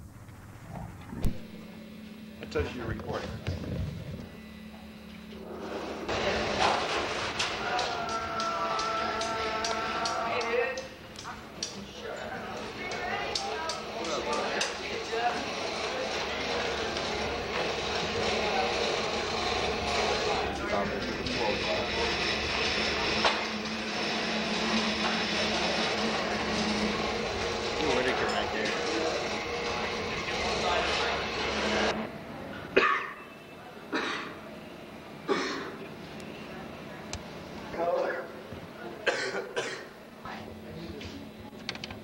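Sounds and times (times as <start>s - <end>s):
steady low hum: 0.0s - 42.0s
overlapping indistinct voices: 6.1s - 32.0s.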